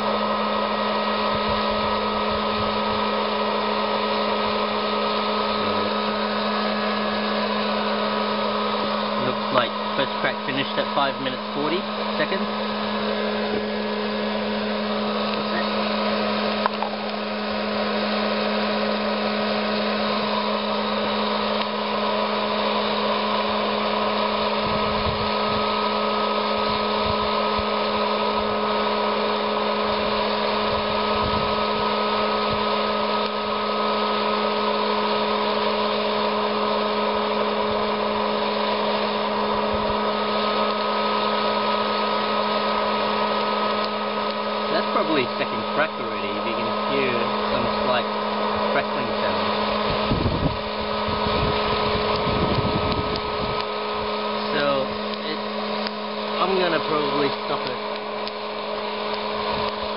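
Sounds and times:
popcorn popper fan humming: 0.0s - 59.9s.

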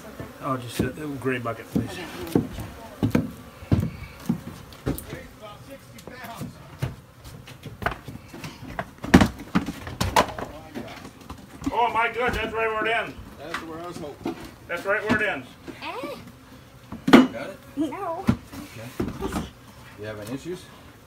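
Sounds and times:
knocks on plywood floor: 1.7s - 5.0s, 8.8s - 10.5s.

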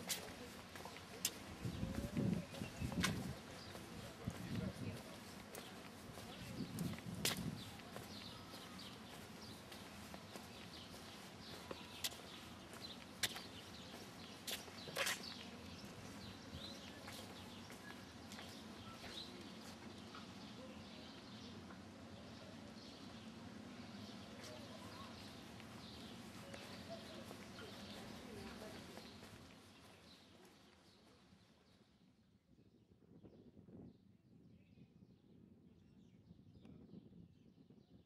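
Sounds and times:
faint street ambience: 0.0s - 37.8s.

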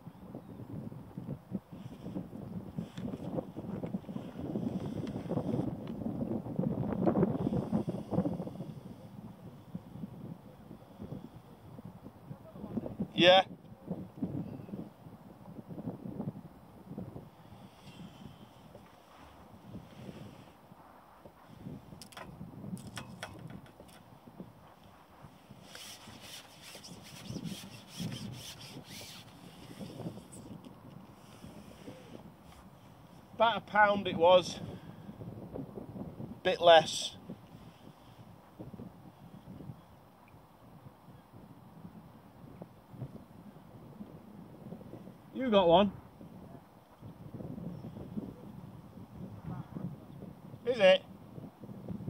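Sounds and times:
wind gusting across microphone: 0.0s - 52.0s
fishing pole clicking: 22.0s - 24.1s, 25.6s - 29.8s.

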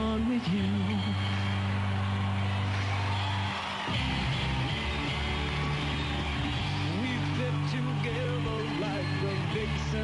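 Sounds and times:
person singing: 0.0s - 1.5s, 6.8s - 10.0s
rock band playing live: 3.4s - 10.0s.

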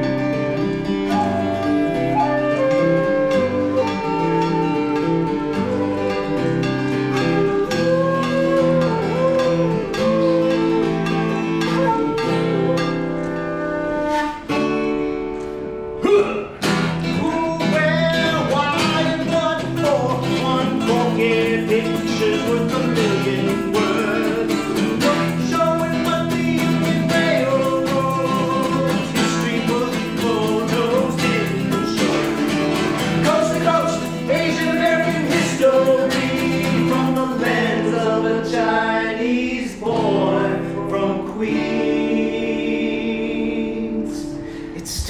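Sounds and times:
wooden flute melody: 0.0s - 16.0s, 17.0s - 38.4s
acoustic guitar strumming: 0.0s - 45.0s.

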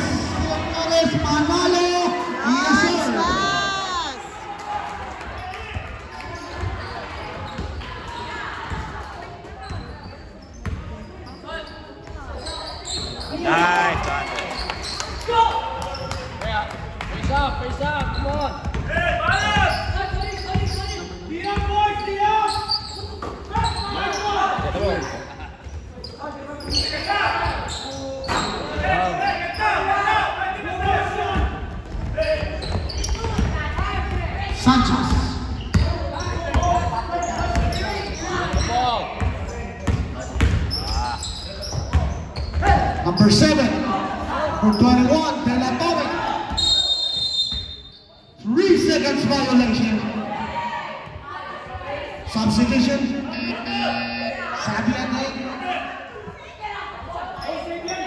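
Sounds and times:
voices shouting: 0.0s - 7.0s.

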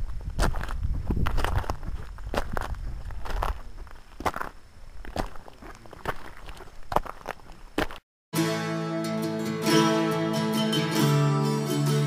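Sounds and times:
footsteps crunching on trail: 0.0s - 8.0s.

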